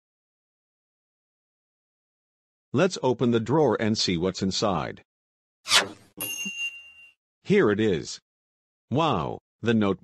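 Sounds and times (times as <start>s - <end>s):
short swish: 5.7s - 6.1s
bright ding: 6.2s - 7.1s.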